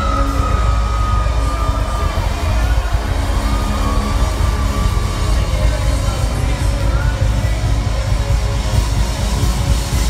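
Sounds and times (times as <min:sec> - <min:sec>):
long held high note: 0:00.0 - 0:07.4
crowd cheering: 0:00.0 - 0:10.0
rock band playing live: 0:00.0 - 0:10.0.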